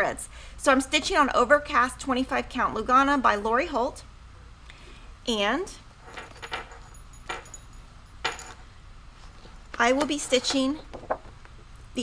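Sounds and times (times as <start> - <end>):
cloth and paper rustling: 9.1 - 11.6.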